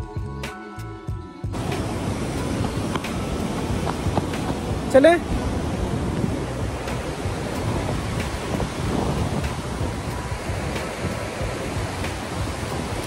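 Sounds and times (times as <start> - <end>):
river rushing over boulders: 1.5 - 13.0
wind buffeting microphone: 1.5 - 13.0.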